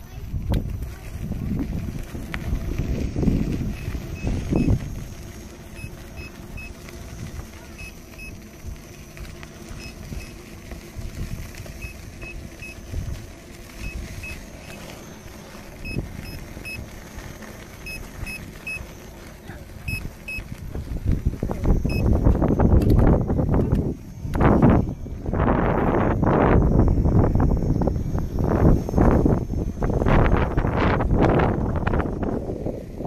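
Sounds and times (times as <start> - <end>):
wind and handling rumble: 0.0 - 33.0.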